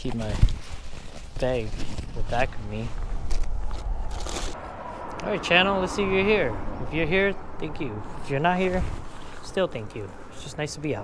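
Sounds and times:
rustling bursts: 0.0s - 4.8s
low rumble: 2.3s - 10.4s.

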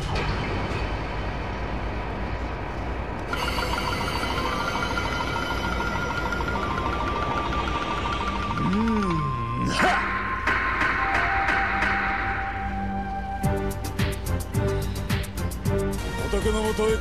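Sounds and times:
low rumbling effect: 0.0s - 16.4s
high pulsing tone: 3.2s - 15.7s
voice-like sound rising and falling: 5.4s - 11.0s.

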